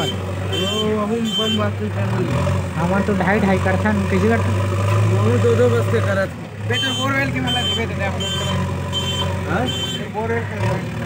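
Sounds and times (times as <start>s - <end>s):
diesel engine running: 0.0s - 11.0s
voices talking: 0.0s - 11.0s.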